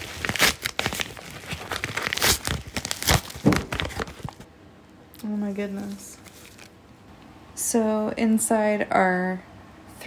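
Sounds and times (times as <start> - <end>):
package being torn open: 0.0 - 4.4.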